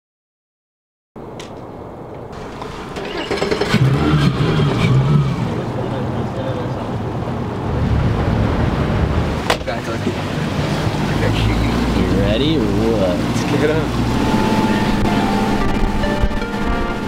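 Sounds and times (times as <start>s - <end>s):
wind: 1.2s - 17.0s
water noise: 1.8s - 17.0s
outboard motors humming: 2.4s - 17.0s.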